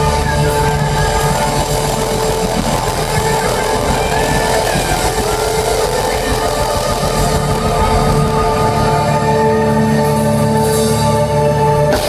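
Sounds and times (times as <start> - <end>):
live rock band playing loudly: 0.0 - 11.1
held droning note: 0.0 - 11.8.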